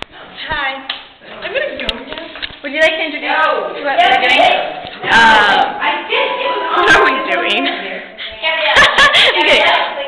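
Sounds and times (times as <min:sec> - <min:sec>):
young voices: 0:00.2 - 0:10.0.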